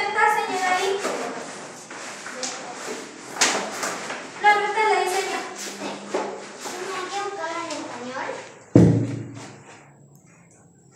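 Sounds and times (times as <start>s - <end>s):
children's voices: 2.2s - 8.6s.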